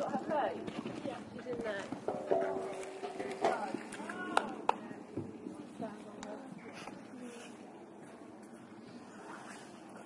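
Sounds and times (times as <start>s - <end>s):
people talking in background: 0.0s - 9.5s.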